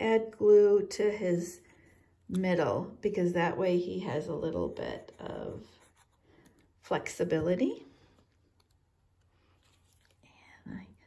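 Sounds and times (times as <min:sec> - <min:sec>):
soft breath: 0:01.6 - 0:02.2.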